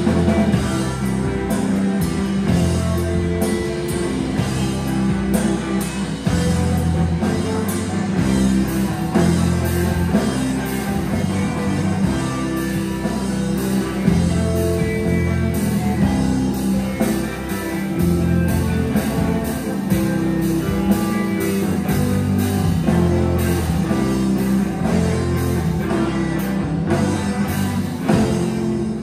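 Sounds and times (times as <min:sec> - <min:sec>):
bass guitar: 0:00.0 - 0:29.0
drum kit beat: 0:00.0 - 0:29.0
electric guitars: 0:00.0 - 0:29.0.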